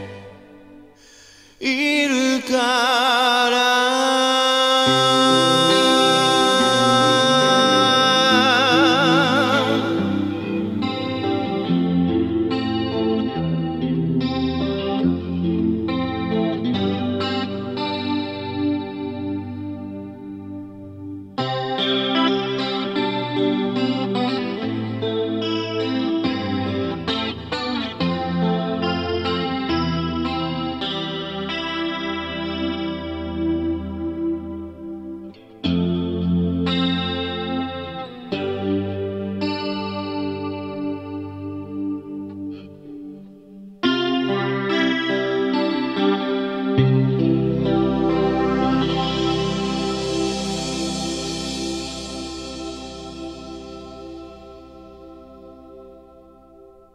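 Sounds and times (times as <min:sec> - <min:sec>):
electric guitar chords ringing: 0:00.0 - 0:56.9.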